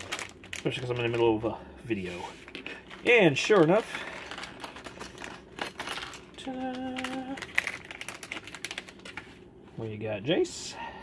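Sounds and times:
plastic bag crinkling: 0:00.0 - 0:09.5.

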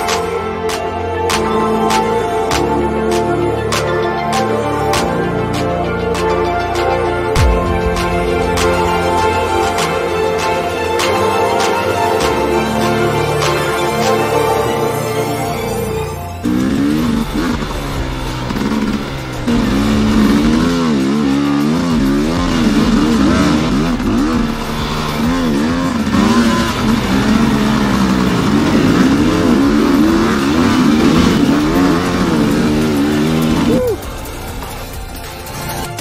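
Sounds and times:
dirt bike engine revving: 0:00.0 - 0:36.0.

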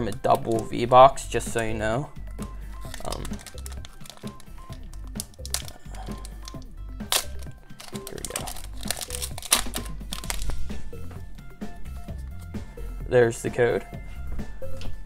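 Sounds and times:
background music: 0:00.0 - 0:15.0
foil wrapper crinkling and tearing: 0:02.8 - 0:10.6.

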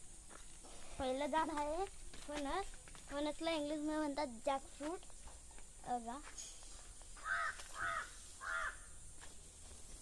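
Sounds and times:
crow cawing: 0:07.2 - 0:09.0.

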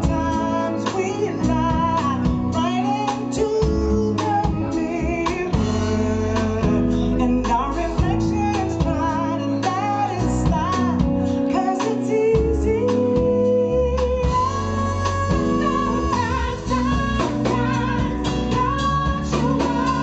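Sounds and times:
bass: 0:00.0 - 0:20.0
guitar: 0:00.0 - 0:20.0
woman singing: 0:00.0 - 0:20.0.

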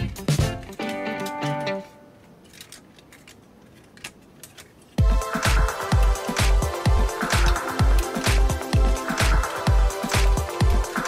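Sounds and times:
plastic toy parts clicking: 0:00.4 - 0:05.0.

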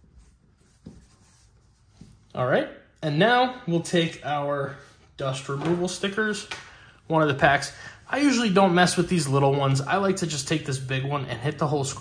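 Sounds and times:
cloth rubbing on glass screen: 0:00.0 - 0:02.3.

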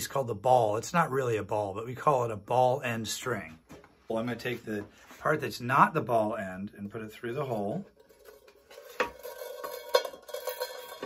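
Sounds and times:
guitar string scraping on tin can: 0:07.0 - 0:11.0
tin can ringing: 0:08.0 - 0:11.0.

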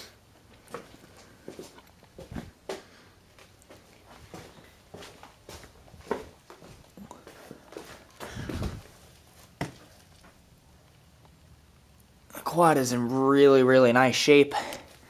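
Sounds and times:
footsteps on concrete floor: 0:00.5 - 0:10.4.

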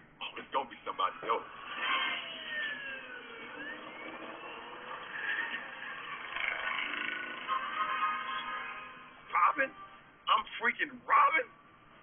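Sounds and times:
held tones: 0:01.4 - 0:10.2.

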